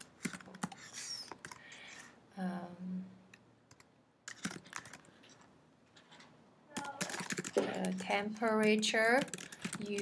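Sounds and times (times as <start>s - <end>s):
computer keyboard key clicks: 6.8s - 10.0s.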